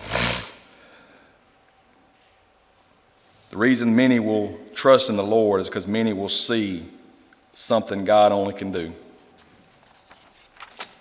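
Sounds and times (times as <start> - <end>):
man breathing into a microphone: 0.6 - 1.5.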